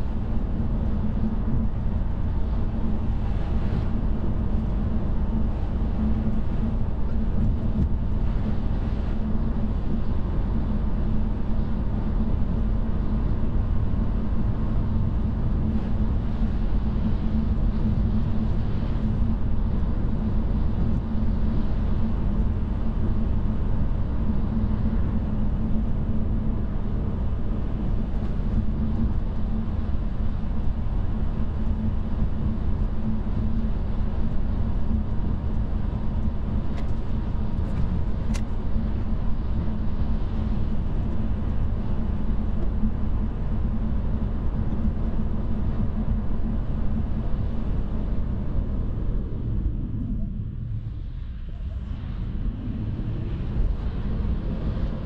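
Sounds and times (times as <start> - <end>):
road and tyre rumble: 24.4 - 55.0.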